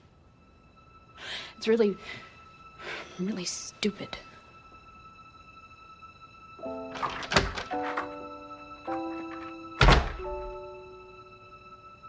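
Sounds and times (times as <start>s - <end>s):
quiet sustained music chords: 0.0s - 12.0s
door shutting with heavy thunk: 9.8s - 10.5s.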